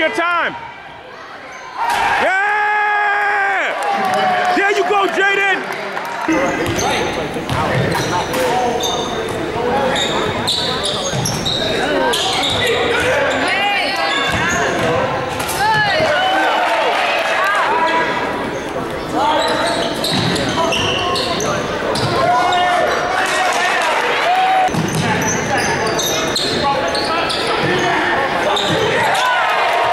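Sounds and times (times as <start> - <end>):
spectators talking and calling out: 0.0 - 29.9
sneakers squeaking: 1.3 - 1.8, 6.3 - 16.2, 18.0 - 23.1, 24.7 - 29.4.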